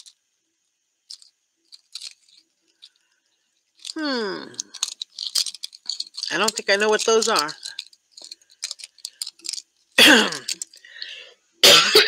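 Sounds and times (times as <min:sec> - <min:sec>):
woman clearing her throat: 0:10.0 - 0:10.5, 0:11.6 - 0:12.0.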